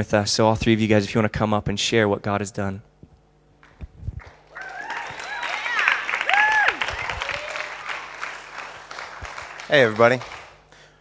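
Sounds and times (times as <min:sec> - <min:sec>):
audience applauding: 0:04.2 - 0:11.0
audience cheering and whooping: 0:04.4 - 0:09.7.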